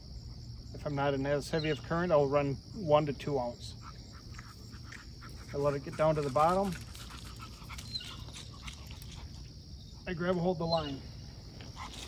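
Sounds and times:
dog panting: 3.8 - 9.5.

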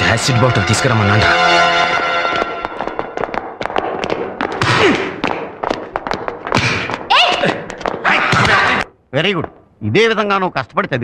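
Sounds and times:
irregular thuds and knocks: 2.4 - 8.6.

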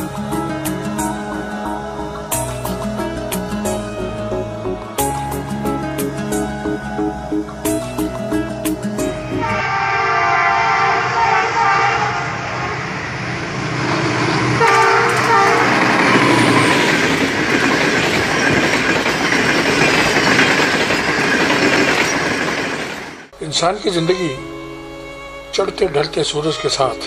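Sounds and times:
train passing at speed: 0.0 - 23.6
train horn blasts: 9.3 - 12.9, 14.5 - 16.8.

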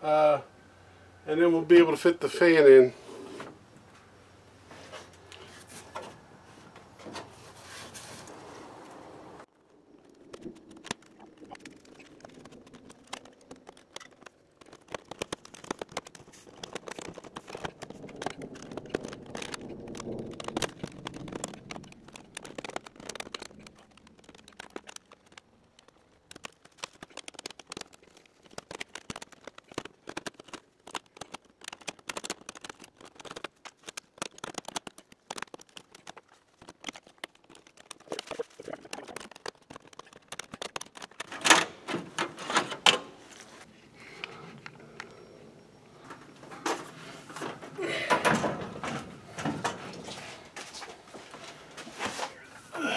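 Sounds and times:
clatter: 10.2 - 42.8.

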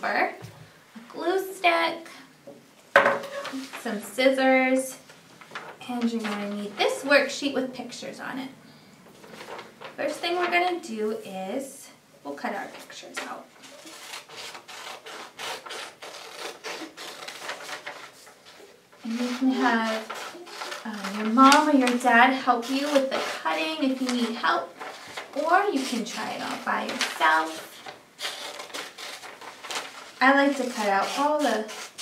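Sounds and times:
paper rustling: 3.1 - 4.2, 5.1 - 7.2, 9.1 - 10.7, 12.6 - 32.0
scissors snipping paper: 13.7 - 18.1, 19.1 - 32.0.

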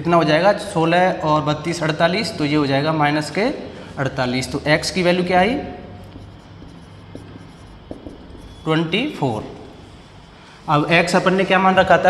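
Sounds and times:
steady low hum: 0.0 - 12.0
marker pen writing on whiteboard: 4.2 - 11.4.

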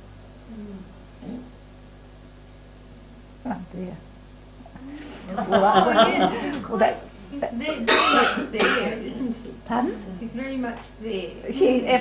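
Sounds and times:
person coughing: 7.6 - 9.2.

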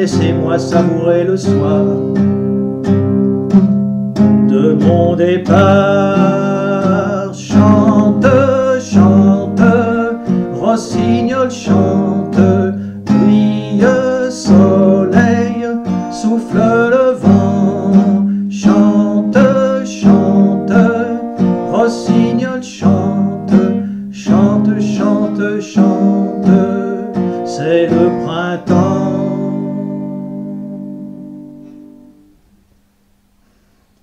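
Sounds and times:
acoustic guitar strumming: 0.0 - 33.7.

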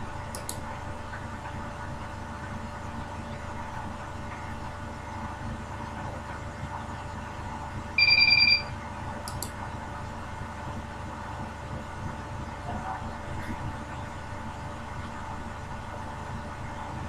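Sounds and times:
low background hum: 0.0 - 17.0
short high electronic beep: 8.0 - 8.7.

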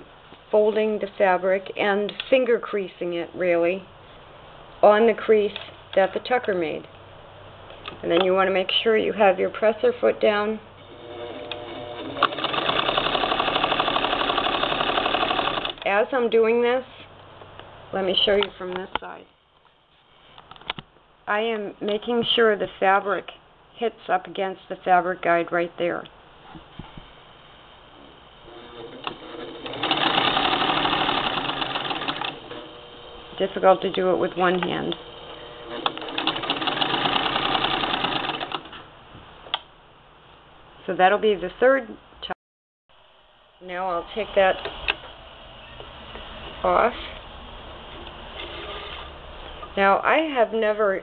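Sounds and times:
sewing machine stitching: 11.0 - 15.8, 28.5 - 32.7, 35.5 - 38.8.

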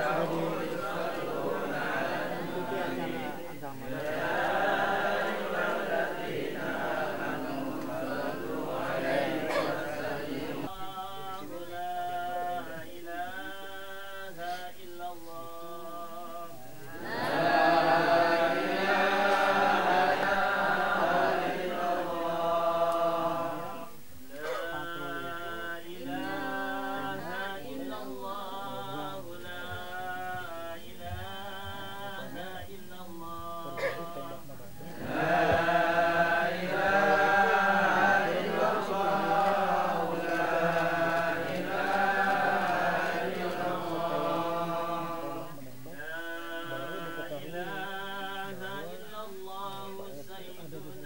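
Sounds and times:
voices chanting devotional recitation: 0.0 - 51.0.

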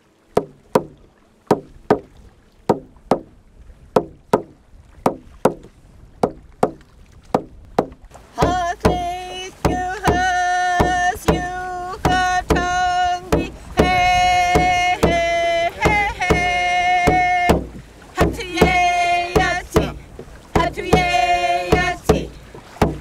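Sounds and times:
sharp knocking drum beat: 4.0 - 4.5, 7.4 - 20.0, 20.6 - 23.0
person singing long held notes: 8.4 - 20.0, 20.6 - 22.4.

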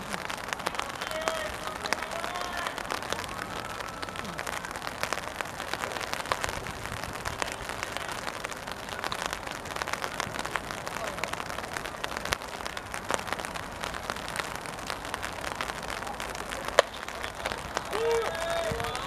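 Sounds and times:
rain patter: 0.0 - 19.0.

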